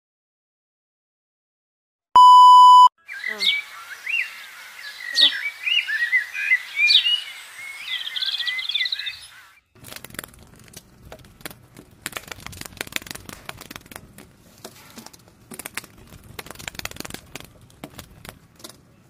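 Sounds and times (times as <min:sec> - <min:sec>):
birds chirping and trilling: 0:03.0 - 0:09.8
vine leaves rustling and crackling: 0:09.8 - 0:18.8.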